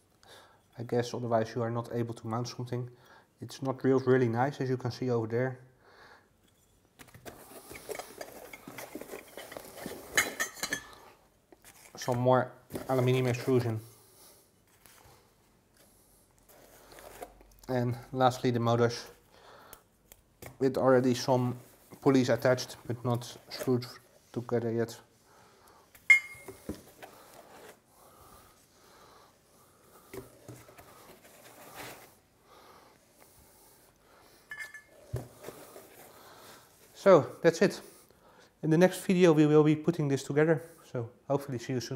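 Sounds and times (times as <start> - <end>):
packaging rustling: 7.2 - 10.2
aluminium bars clinking and knocking: 26.1 - 26.5, 34.5 - 34.9.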